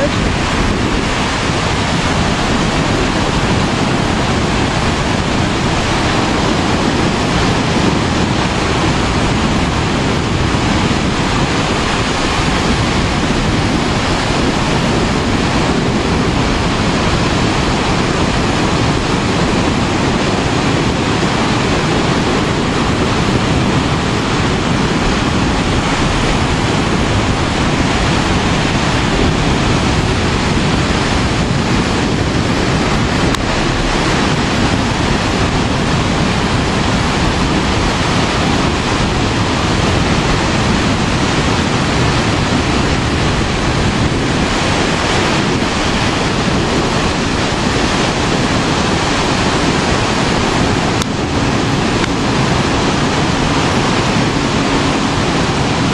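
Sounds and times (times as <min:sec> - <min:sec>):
surf waves breaking on beach: 0:00.0 - 0:55.9
wind buffeting microphone: 0:00.0 - 0:55.9.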